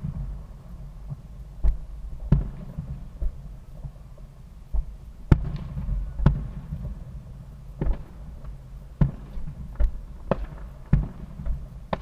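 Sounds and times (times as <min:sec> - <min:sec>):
fireworks bangs: 0:00.0 - 0:12.0
low rumble: 0:00.0 - 0:12.0.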